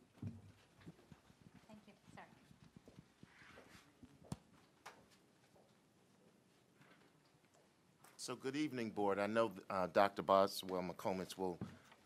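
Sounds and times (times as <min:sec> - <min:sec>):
faint footsteps: 0:00.0 - 0:08.3, 0:10.5 - 0:12.0.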